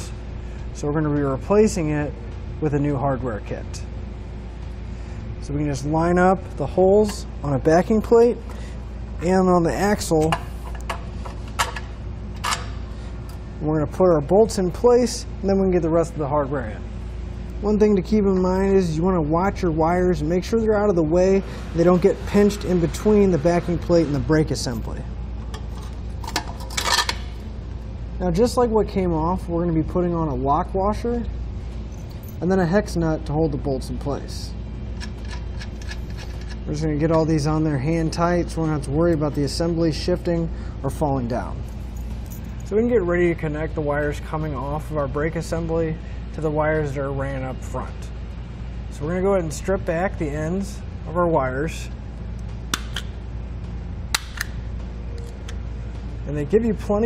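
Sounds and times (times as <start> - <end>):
metal scraping and clinking: 25.5 - 27.4, 35.0 - 36.7
wire stripper clicks: 54.1 - 54.6.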